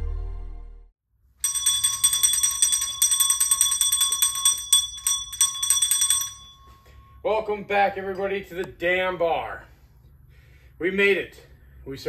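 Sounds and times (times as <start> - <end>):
background music: 0.0 - 0.9
small hand bell ringing: 1.4 - 7.2.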